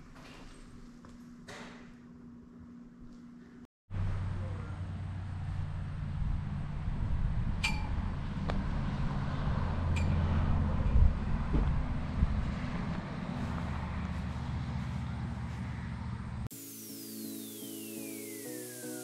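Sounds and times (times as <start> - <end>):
wind buffeting microphone: 6.0 - 15.5
metal pings on flagpole: 7.6 - 8.0
intro music: 16.5 - 19.0.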